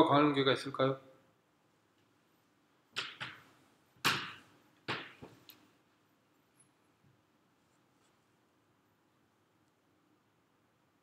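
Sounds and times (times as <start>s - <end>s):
sharp knocks: 3.0s - 5.4s.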